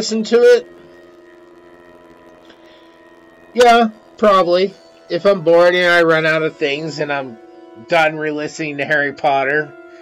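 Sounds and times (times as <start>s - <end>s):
music drone of held tones: 0.0s - 10.0s.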